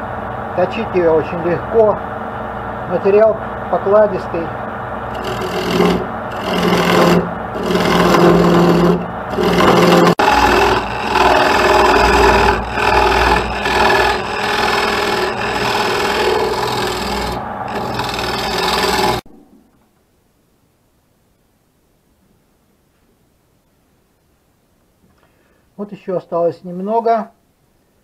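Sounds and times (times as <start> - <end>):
lathe motor hum: 5.0 - 19.2
lathe tool cutting wood: 5.1 - 19.2.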